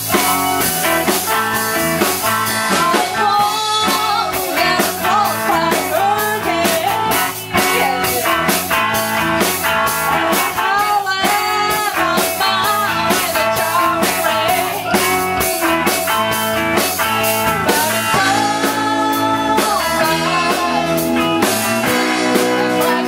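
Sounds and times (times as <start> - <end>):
drum kit steady beat: 0.0 - 23.0
electric guitars: 0.0 - 23.0
woman singing into a microphone: 2.4 - 8.6, 10.3 - 16.0, 17.6 - 23.0.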